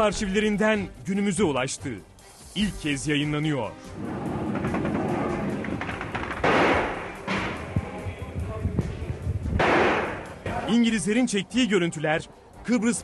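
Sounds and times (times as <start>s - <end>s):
music: 0.0s - 13.0s.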